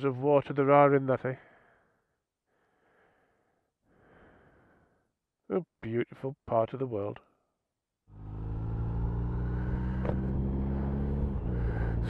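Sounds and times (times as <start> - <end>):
motorcycle engine cruising: 8.1 - 12.0
wind and road noise: 8.2 - 12.0.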